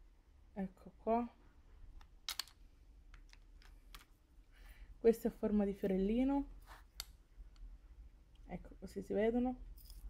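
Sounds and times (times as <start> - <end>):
soft rustle: 5.6 - 7.0.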